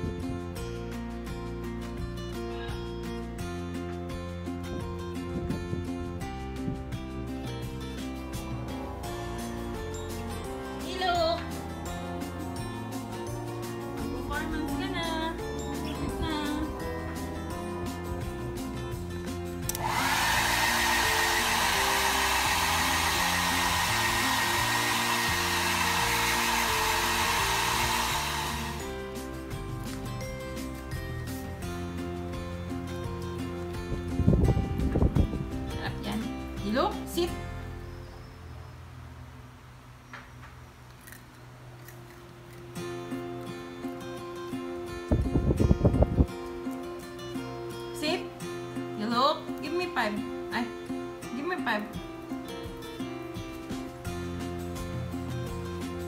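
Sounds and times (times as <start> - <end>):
background music: 0.0 - 38.1, 41.8 - 56.0
hair dryer motor whine: 19.6 - 29.5
loud rapidly pulsing sound: 19.8 - 28.9.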